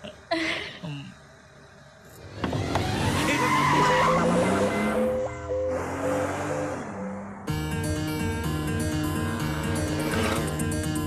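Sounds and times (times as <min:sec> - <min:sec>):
tyres skidding: 0:01.7 - 0:11.0
car engine revving: 0:02.2 - 0:11.0
film background music: 0:04.1 - 0:11.0.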